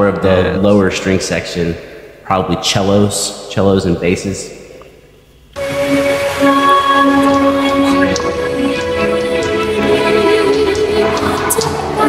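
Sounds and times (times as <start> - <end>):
keyboard orchestral strings: 5.6 - 12.0.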